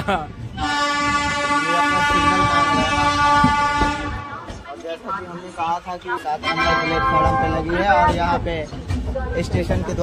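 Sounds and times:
train horn blast: 0:00.6 - 0:04.5, 0:06.4 - 0:07.8.

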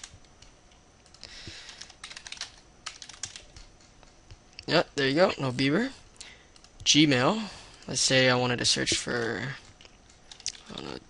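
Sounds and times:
computer keyboard typing: 0:00.0 - 0:04.3, 0:07.8 - 0:11.0.

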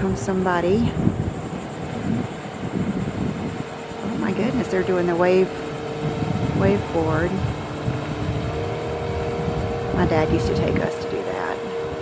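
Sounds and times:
motorboat engine running: 0:00.0 - 0:12.0.

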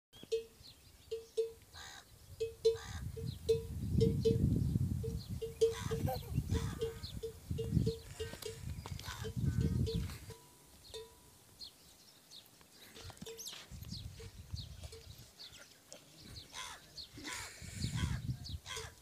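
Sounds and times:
camel calf calling: 0:05.4 - 0:10.3.

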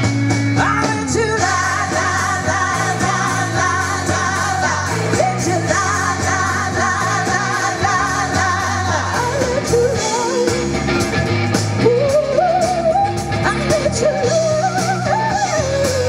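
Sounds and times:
bass: 0:00.0 - 0:16.0
drums: 0:00.0 - 0:16.0
electric guitar: 0:00.0 - 0:16.0
women singing together: 0:00.9 - 0:10.6.

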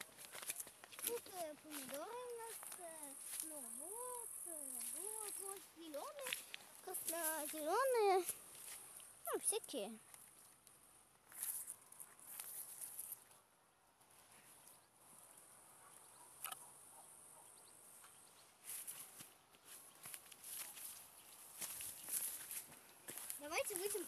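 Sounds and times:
dry grass rustling: 0:00.0 - 0:13.4, 0:18.6 - 0:24.0
quiet footsteps: 0:00.0 - 0:16.6, 0:17.9 - 0:24.0.

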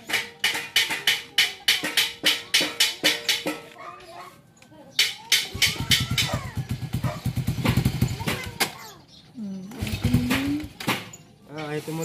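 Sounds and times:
motorcycle engine running: 0:05.9 - 0:08.5, 0:09.6 - 0:10.8.

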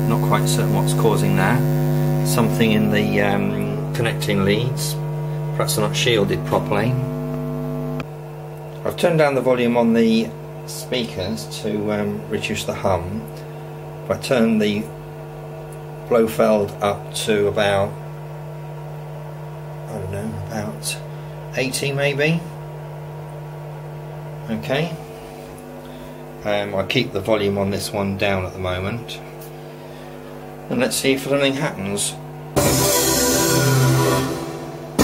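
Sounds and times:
electrical hum: 0:00.0 - 0:35.0
bright airy synth pad: 0:32.6 - 0:35.0.

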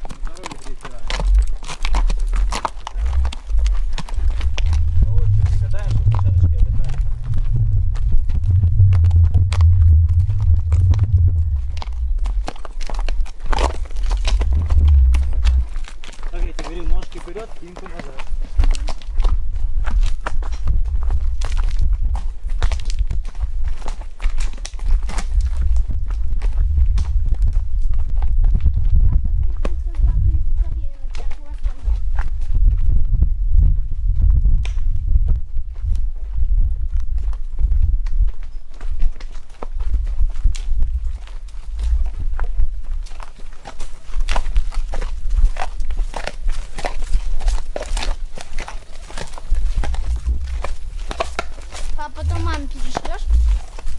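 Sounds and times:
horse hooves clip-clopping: 0:00.0 - 0:53.9
low rumble of movement: 0:01.1 - 0:17.4, 0:18.1 - 0:53.9
wind on microphone: 0:01.2 - 0:17.0, 0:18.4 - 0:53.9.

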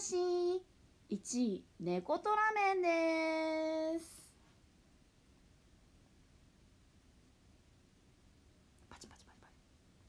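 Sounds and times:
faint whisper: 0:08.8 - 0:09.6.

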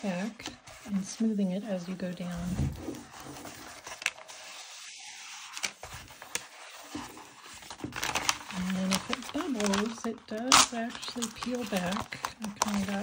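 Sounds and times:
plastic film rustling and crinkling: 0:00.0 - 0:13.0
backing paper peeling off film: 0:02.8 - 0:13.0.

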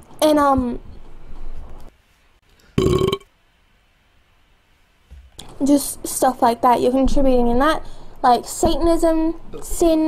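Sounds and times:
person's short throaty vocal sound: 0:02.8 - 0:03.2.

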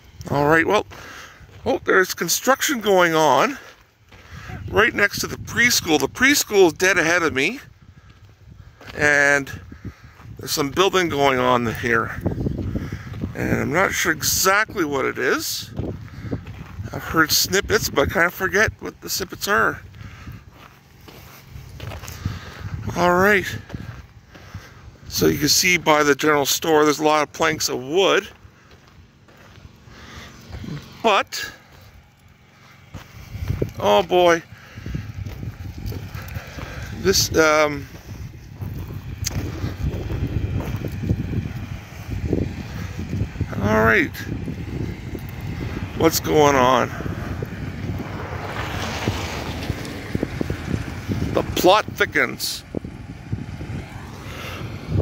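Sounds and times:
footsteps on a dirt road: 0:00.0 - 0:55.0
low microphone rumble: 0:03.2 - 0:55.0.

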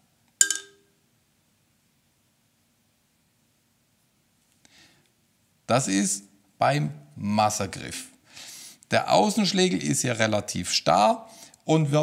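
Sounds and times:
marimba mallets clicking: 0:00.4 - 0:00.8.

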